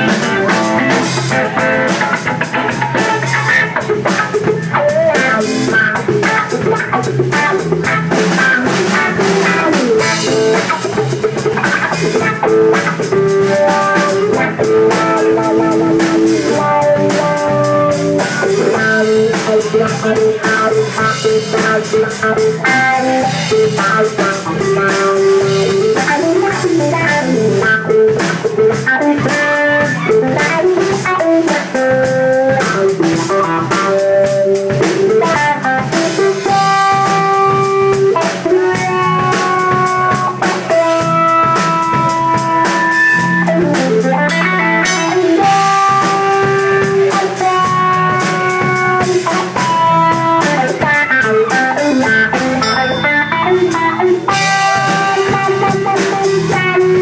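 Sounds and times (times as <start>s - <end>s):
bass guitar: 0.0s - 57.0s
drum kit: 0.0s - 57.0s
electric guitar lead: 0.0s - 57.0s.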